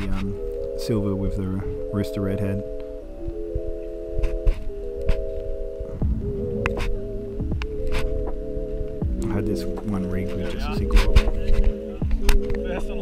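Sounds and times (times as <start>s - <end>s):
electronic music chords: 0.0s - 13.0s
sharp ticks: 6.6s - 9.6s.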